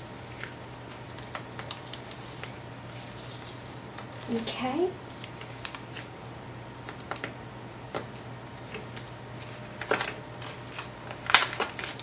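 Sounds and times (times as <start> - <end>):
plastic crinkling rustle: 0.0 - 6.1, 9.4 - 12.0.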